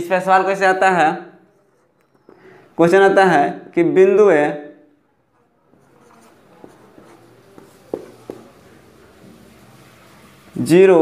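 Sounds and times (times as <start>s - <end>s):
marker scratching on whiteboard: 5.3s - 10.5s.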